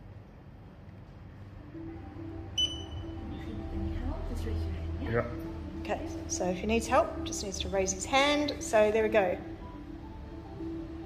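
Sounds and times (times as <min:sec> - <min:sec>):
background music: 0:01.2 - 0:11.0
high electronic beep: 0:02.6 - 0:03.2.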